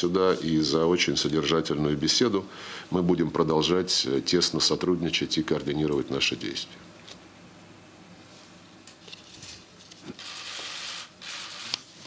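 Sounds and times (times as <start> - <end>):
camera shutters firing in bursts: 10.2 - 11.8.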